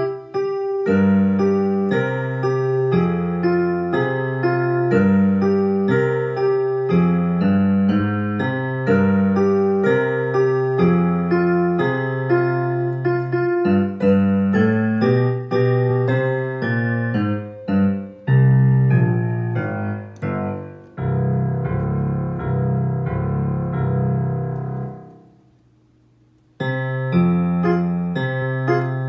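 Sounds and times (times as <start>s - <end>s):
digital piano playing: 0.0s - 25.5s, 26.6s - 29.0s
low bass piano chords: 0.0s - 25.6s, 26.6s - 29.0s.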